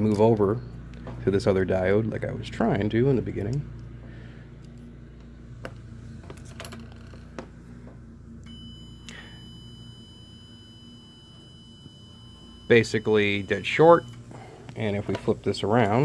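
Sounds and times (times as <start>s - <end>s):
steady low hum: 0.0s - 16.0s
faint high-pitched tone: 8.4s - 14.2s.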